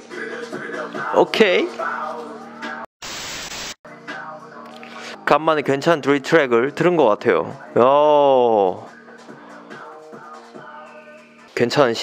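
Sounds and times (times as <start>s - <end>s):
static hiss glitch effect: 3.0s - 3.8s
quiet music: 3.9s - 12.0s.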